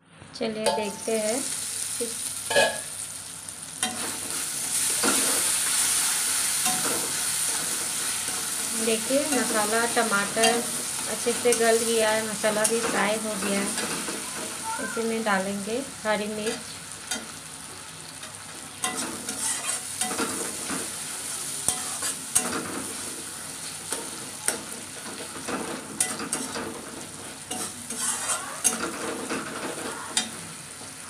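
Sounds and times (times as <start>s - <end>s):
food sizzling in oil: 0.5s - 31.0s
metal spatula scraping pan: 18.8s - 20.7s, 24.0s - 30.3s.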